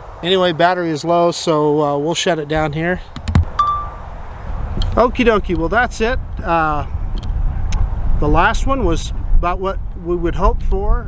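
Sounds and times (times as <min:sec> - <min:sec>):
wind rumble on microphone: 0:02.5 - 0:11.0
short electronic beep: 0:03.6 - 0:04.1.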